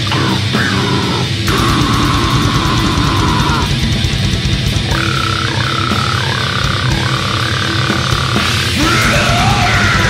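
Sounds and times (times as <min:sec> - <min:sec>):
heavy metal drums and guitar: 0:00.0 - 0:10.0.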